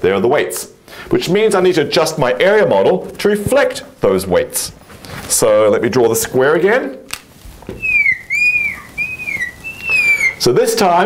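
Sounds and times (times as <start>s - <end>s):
marker squeaking on glass: 7.7s - 10.6s.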